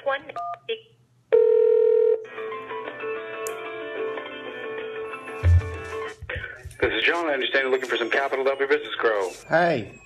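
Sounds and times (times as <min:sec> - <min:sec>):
telephone tone: 0:01.3 - 0:02.3.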